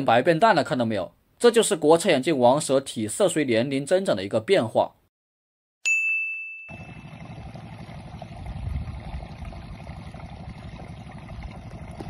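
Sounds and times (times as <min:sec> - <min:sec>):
bright ding: 0:05.8 - 0:07.0.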